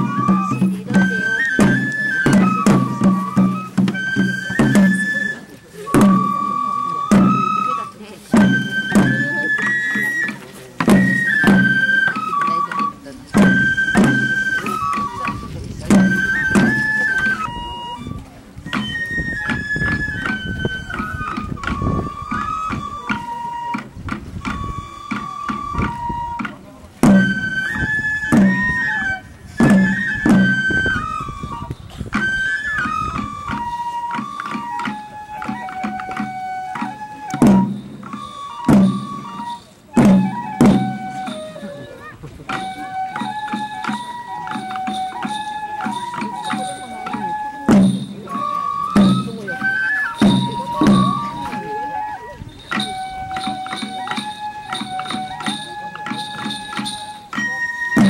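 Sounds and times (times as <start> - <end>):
bamboo flute melody: 0.0 - 58.0
small taiko drum beats: 0.0 - 58.0.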